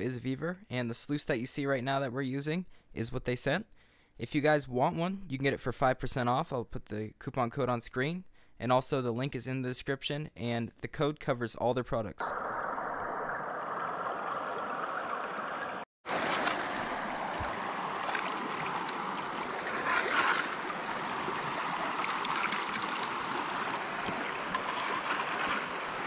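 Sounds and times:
creek water running: 0:12.2 - 0:26.0
small scrapes and splashes: 0:16.1 - 0:26.0.

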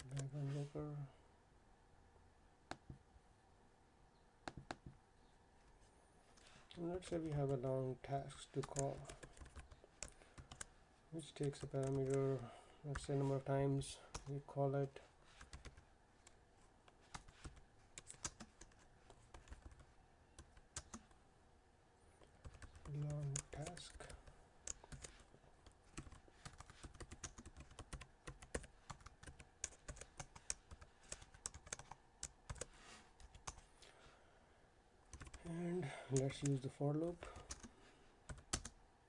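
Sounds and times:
keyboard typing: 0:00.0 - 0:00.3, 0:08.5 - 0:10.7, 0:11.3 - 0:12.3, 0:15.3 - 0:21.2, 0:22.2 - 0:33.6, 0:35.1 - 0:35.4, 0:37.4 - 0:37.7, 0:38.3 - 0:38.8.

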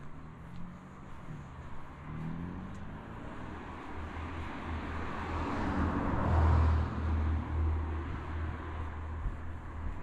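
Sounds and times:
van driving past: 0:00.0 - 0:07.9.

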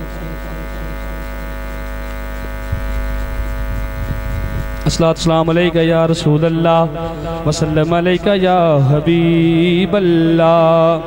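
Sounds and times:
electrical hum and buzz: 0:00.0 - 0:11.0
low rumble: 0:02.7 - 0:08.0.

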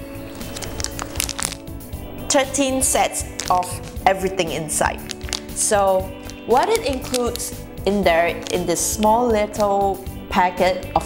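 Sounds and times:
background music: 0:00.0 - 0:11.0
plastic packet crackling: 0:00.2 - 0:09.6.

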